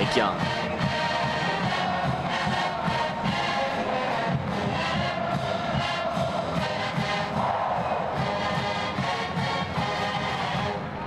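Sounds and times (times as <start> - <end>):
marching band brass: 0.0 - 11.0
stadium crowd cheering: 0.0 - 11.0.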